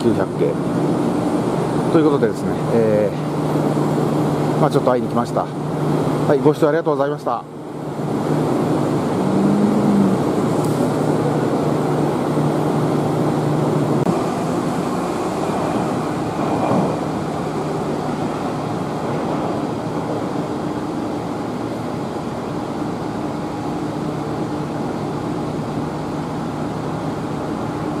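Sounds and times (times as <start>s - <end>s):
traffic noise: 7.4s - 28.0s
trams humming: 7.6s - 28.0s.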